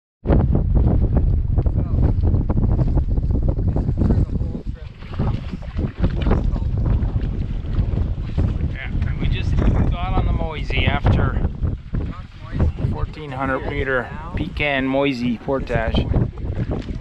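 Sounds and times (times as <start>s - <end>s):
wind buffeting microphone: 0.2s - 17.0s.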